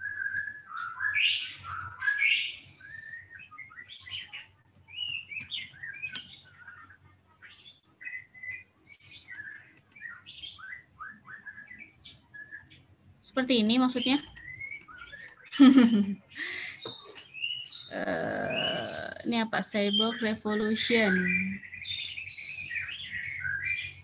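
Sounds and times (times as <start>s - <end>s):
small birds chirping: 0.0s - 24.0s.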